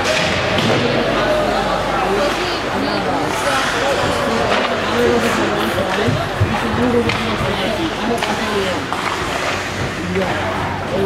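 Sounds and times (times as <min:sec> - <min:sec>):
chatter of spectators: 0:00.0 - 0:11.0
ice rink background noise: 0:00.0 - 0:11.0.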